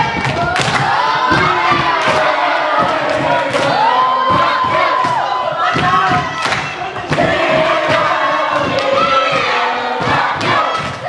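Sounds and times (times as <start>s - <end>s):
crowd of children shouting: 0.0s - 11.0s
people clapping: 0.0s - 11.0s.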